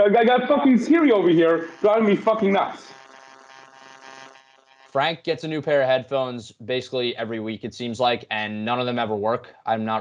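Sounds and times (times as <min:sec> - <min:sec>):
faint electronic buzz: 0:00.0 - 0:10.0.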